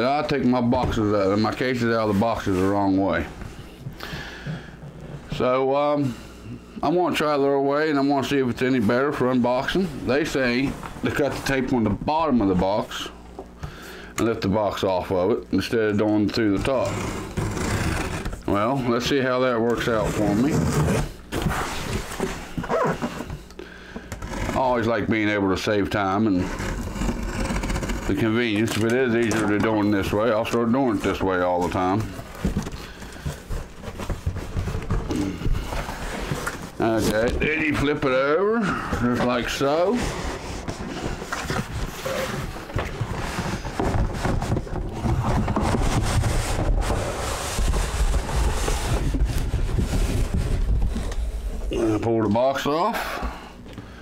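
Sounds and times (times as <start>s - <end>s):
cardboard box scraping and rustling: 16.3s - 18.8s, 19.8s - 23.2s, 26.2s - 51.6s.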